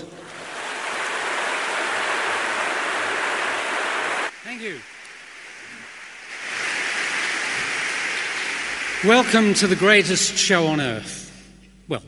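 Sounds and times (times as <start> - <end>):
audience applauding: 0.3 - 4.8, 6.4 - 10.3.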